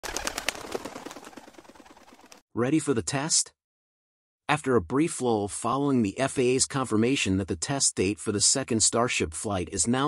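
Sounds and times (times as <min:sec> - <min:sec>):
bird wings flapping: 0:00.0 - 0:02.4.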